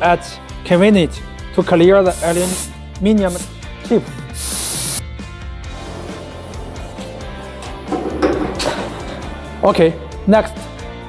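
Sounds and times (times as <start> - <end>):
air blow gun hiss: 2.1 - 3.5, 4.3 - 5.0.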